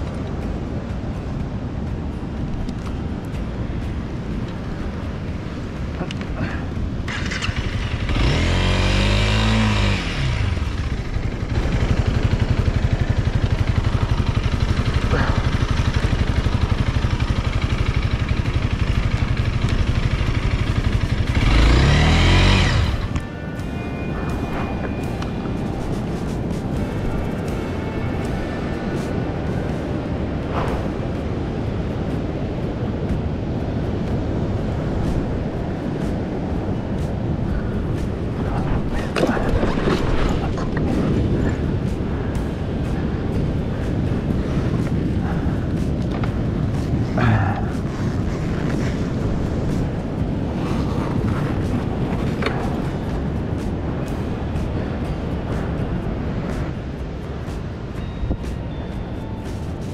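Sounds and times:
wind: 0.0s - 59.9s
dirt bike engine revving: 6.4s - 23.5s.

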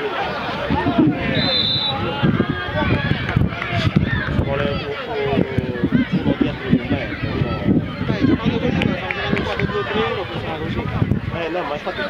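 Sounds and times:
players shouting: 0.0s - 12.0s.

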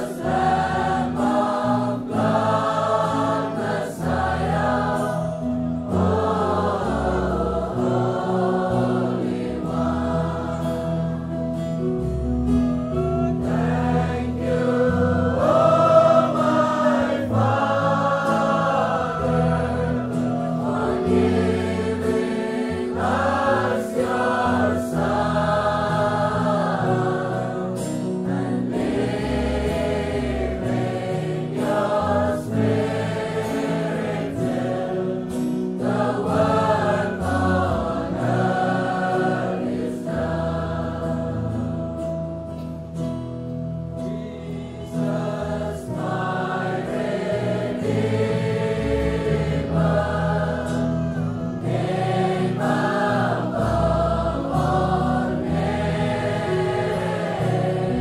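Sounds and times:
choir singing gospel music: 0.0s - 58.0s.

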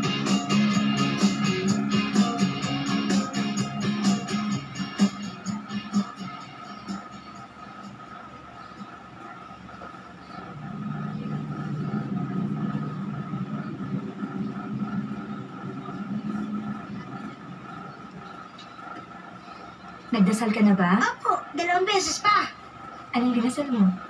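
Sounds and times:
low drone: 0.0s - 20.7s
horror film soundtrack on tv: 0.0s - 24.0s.

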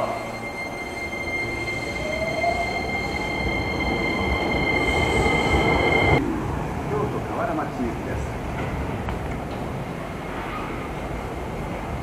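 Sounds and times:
train motor whine: 0.0s - 6.2s
train wheels squealing: 0.0s - 6.2s.

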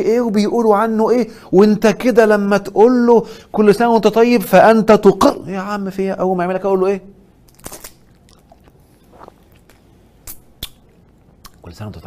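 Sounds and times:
man sucking a lollipop: 7.5s - 11.6s.

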